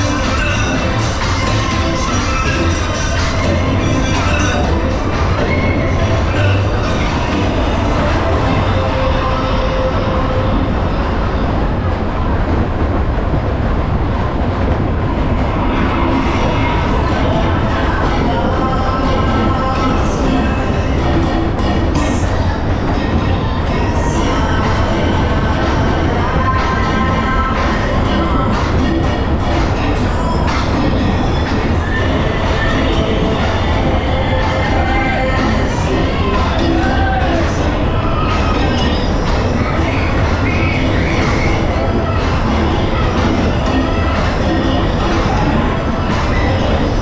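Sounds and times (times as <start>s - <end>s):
faint dance music: 0.0s - 47.0s
fairground ride rumbling: 0.0s - 47.0s.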